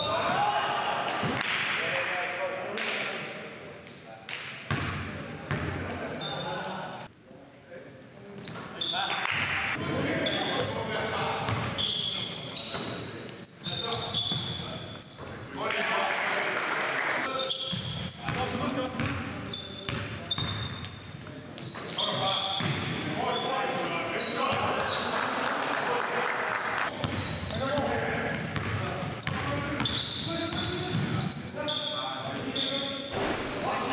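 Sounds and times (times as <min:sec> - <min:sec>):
sneaker squeaks: 0:05.5 - 0:07.2, 0:07.9 - 0:09.5, 0:10.2 - 0:15.6, 0:17.3 - 0:25.2, 0:26.9 - 0:33.9.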